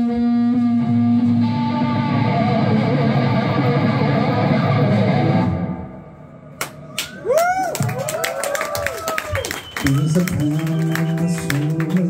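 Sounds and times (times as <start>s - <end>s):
electric guitar bent notes: 0.0s - 7.0s.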